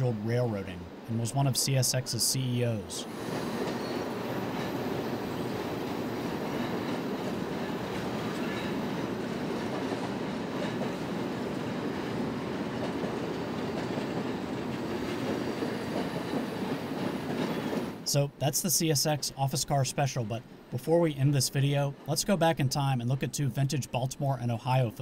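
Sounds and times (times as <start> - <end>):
train wheels on bridge rails: 3.0 - 18.1.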